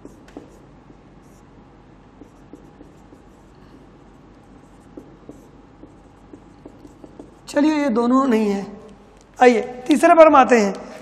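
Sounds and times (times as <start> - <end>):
marker pen writing on whiteboard: 0.0 - 1.5, 2.1 - 8.5.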